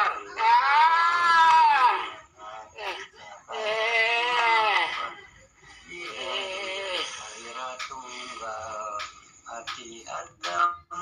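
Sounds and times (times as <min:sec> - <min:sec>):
person holding sung tones: 0:01.7 - 0:11.0.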